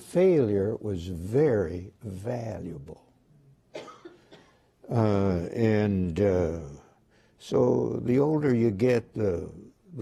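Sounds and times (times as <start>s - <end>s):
person coughing: 3.7s - 4.6s.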